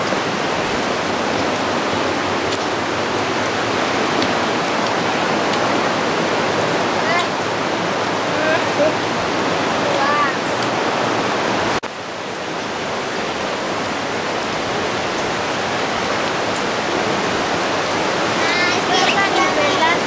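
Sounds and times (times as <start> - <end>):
water rushing: 0.0 - 20.0.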